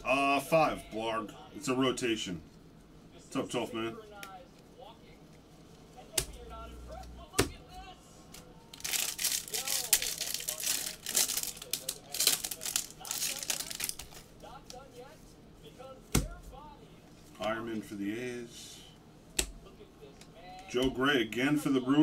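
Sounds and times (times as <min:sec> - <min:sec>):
foil wrapper crinkling: 0:08.7 - 0:14.8.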